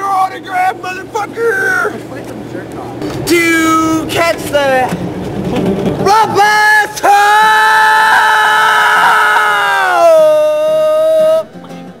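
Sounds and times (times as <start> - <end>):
man yelling: 0.0 - 2.1, 3.2 - 4.7, 6.0 - 11.5.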